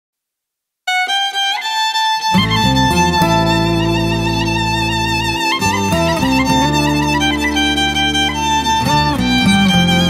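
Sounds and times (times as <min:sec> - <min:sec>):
bowed string melody: 0:00.9 - 0:10.0.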